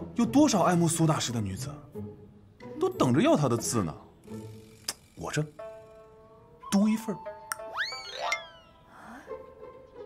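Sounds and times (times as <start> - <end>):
light background music: 0.0 - 10.0
sharp click: 4.8 - 5.1
cartoon boing sound effect: 7.7 - 8.8.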